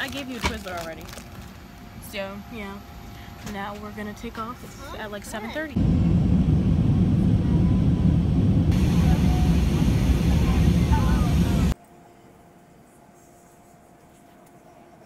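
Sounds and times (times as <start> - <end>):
low cabin hum: 0.1 - 11.8
jet engines and rushing air: 5.7 - 11.8.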